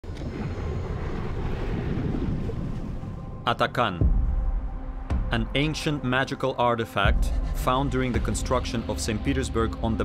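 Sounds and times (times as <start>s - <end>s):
steady low rumble: 0.0s - 6.4s.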